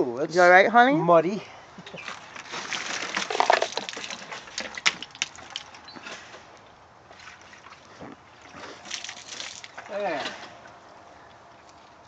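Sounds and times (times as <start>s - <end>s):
water sloshing and splashing: 2.0s - 12.0s.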